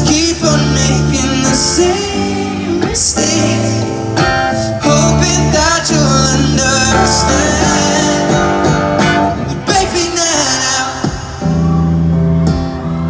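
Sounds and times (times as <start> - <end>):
acoustic guitar strummed and picked: 0.0 - 13.0
person singing: 0.0 - 13.0.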